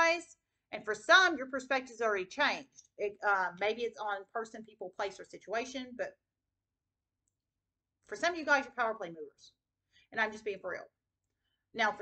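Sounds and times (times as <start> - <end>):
woman speaking: 0.0 - 6.2, 8.1 - 9.4, 10.2 - 10.9, 11.8 - 12.0.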